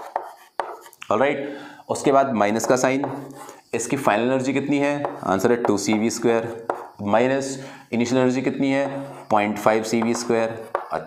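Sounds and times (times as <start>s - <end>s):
chalk tapping and scraping: 0.0s - 1.0s, 2.5s - 3.7s, 4.7s - 7.1s, 8.6s - 11.0s
man talking: 1.0s - 11.0s.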